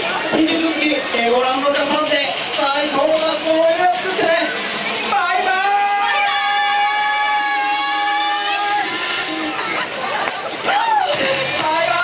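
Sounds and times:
mixed voices: 0.0s - 12.0s
music: 0.0s - 12.0s.

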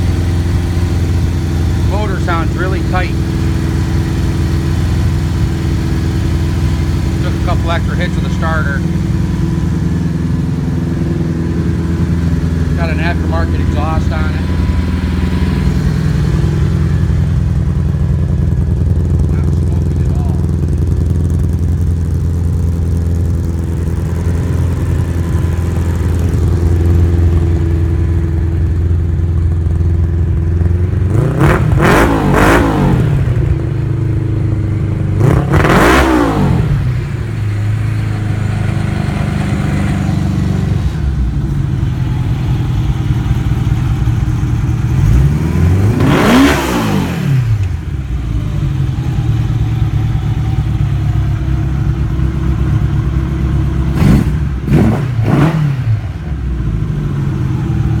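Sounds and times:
motorcycle engine idling: 0.0s - 31.4s, 32.8s - 35.2s, 36.7s - 46.5s, 47.3s - 54.7s, 56.0s - 58.0s
engine revving in throttle blips: 0.0s - 58.0s.

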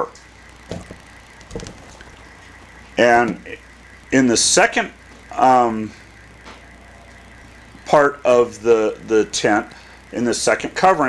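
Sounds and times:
faint low hum: 0.0s - 11.0s
man talking: 3.0s - 3.6s, 4.2s - 5.9s, 7.9s - 11.0s.

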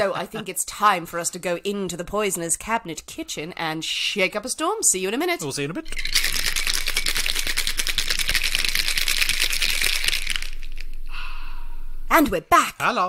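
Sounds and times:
ice rattling in cocktail shaker: 5.9s - 10.9s.

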